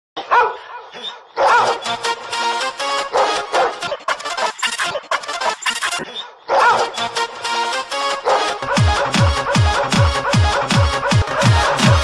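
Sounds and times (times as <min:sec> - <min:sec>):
dog barking: 0:00.2 - 0:02.0, 0:03.0 - 0:04.0, 0:06.0 - 0:07.1, 0:08.2 - 0:11.8.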